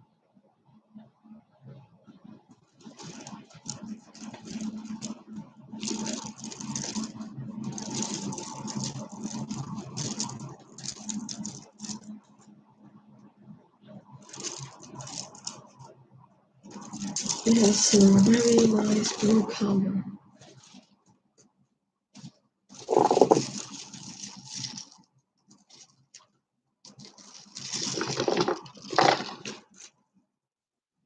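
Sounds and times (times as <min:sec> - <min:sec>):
stone beads clicking and rattling: 0:05.8 - 0:12.1, 0:14.3 - 0:15.7, 0:16.7 - 0:19.2, 0:22.8 - 0:25.0, 0:26.9 - 0:29.9.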